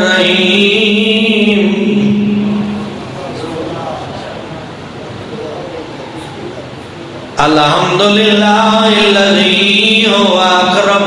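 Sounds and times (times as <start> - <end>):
man chanting a long note: 0.0 - 4.1
steady background hiss: 0.0 - 11.0.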